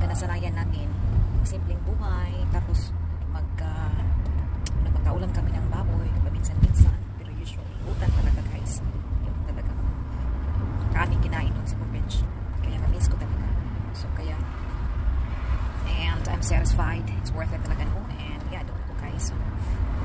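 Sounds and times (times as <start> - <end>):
car cabin rumble: 0.0 - 20.0.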